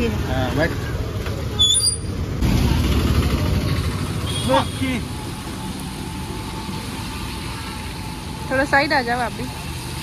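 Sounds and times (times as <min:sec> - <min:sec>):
traffic rumble: 0:00.0 - 0:10.0.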